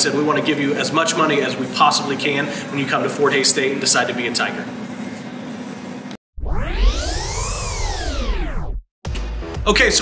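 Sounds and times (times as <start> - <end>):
room hum: 0.0 - 8.8
synthesized rising transition sweep: 6.4 - 8.8.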